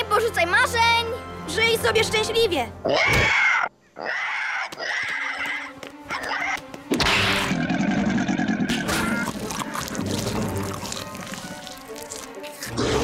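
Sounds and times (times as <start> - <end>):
dramatic cartoon music: 0.0 - 13.0
creature screeching and growling: 6.3 - 11.8.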